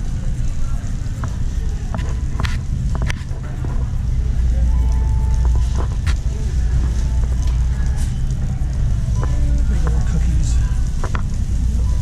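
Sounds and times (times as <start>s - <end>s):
shopping cart rumbling on concrete: 0.0s - 12.0s.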